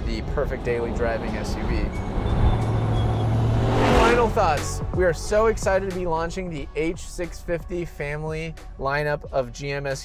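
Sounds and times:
car engine driving by: 0:00.0 - 0:07.4.

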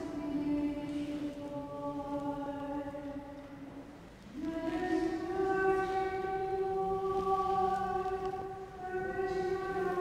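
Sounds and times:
slow church music chords: 0:00.0 - 0:10.0.

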